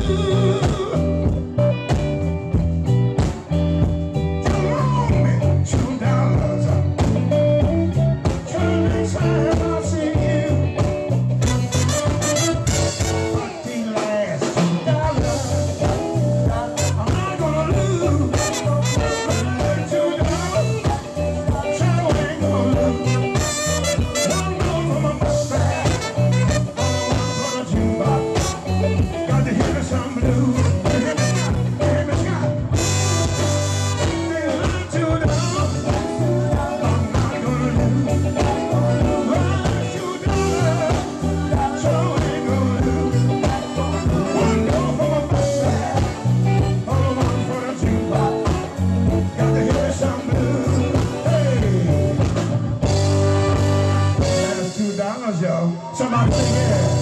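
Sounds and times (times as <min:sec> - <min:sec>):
person singing: 0:00.0 - 0:02.2, 0:04.4 - 0:57.0
blues and soul band playing: 0:00.0 - 0:57.0
horn section: 0:11.4 - 0:14.0, 0:14.9 - 0:21.2, 0:21.9 - 0:57.0.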